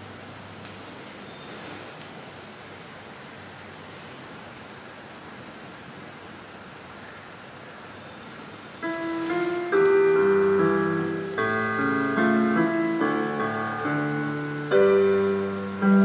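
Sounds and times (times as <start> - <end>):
electric fans running: 0.0 - 16.0.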